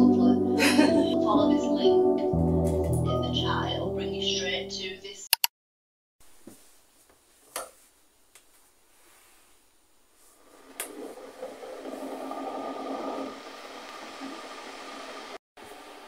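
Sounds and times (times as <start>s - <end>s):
kettle water heating hiss: 8.3s - 16.0s.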